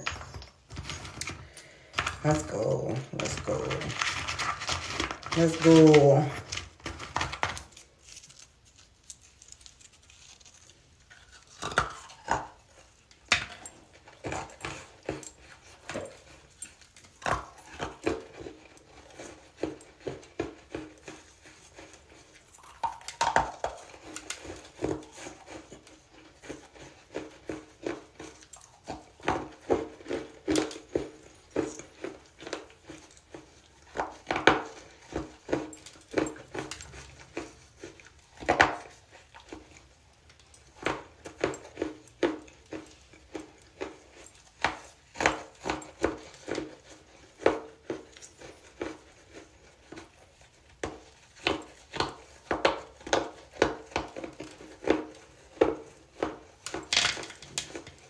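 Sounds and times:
crisp crunching: 0:00.8 - 0:50.4.

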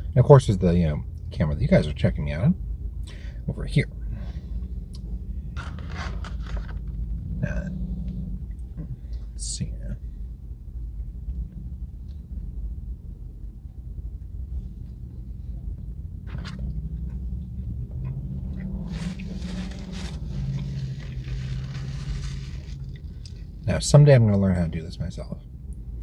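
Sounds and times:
low steady rumble: 0:00.0 - 0:26.0
held hum: 0:02.5 - 0:26.0
faint chewing: 0:18.0 - 0:23.6.

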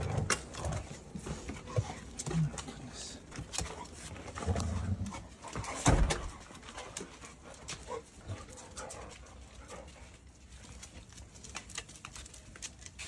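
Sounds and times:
dogs moving about: 0:00.0 - 0:13.0.

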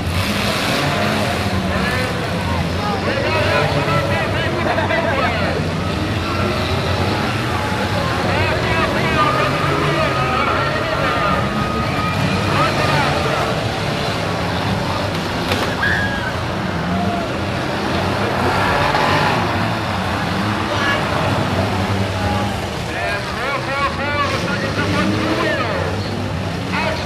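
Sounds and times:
car engines revving: 0:00.0 - 0:27.0
crowd shouting and cheering: 0:00.0 - 0:27.0.

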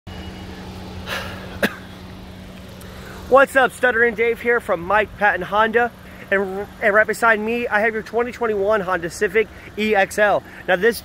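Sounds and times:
sharp cough: 0:01.5 - 0:01.9
person breathing: 0:02.8 - 0:03.3, 0:10.4 - 0:10.7.

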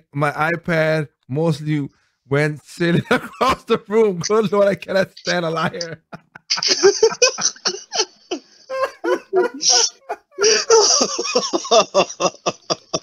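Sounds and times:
man laughing hard: 0:02.9 - 0:04.3, 0:05.3 - 0:13.0.

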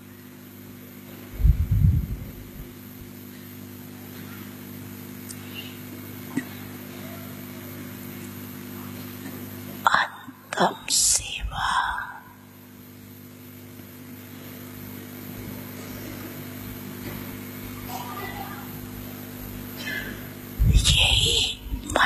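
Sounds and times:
electrical hum: 0:00.0 - 0:22.0
woman's breath and voice: 0:19.8 - 0:22.0.

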